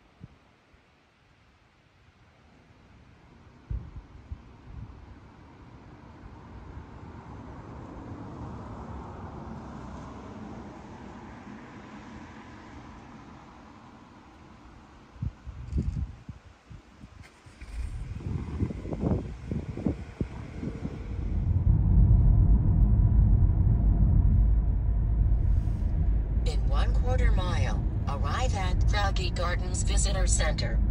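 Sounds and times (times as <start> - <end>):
faint outdoor ambience: 0.0 - 30.9
car road and engine rumble: 3.8 - 16.2, 17.0 - 30.9.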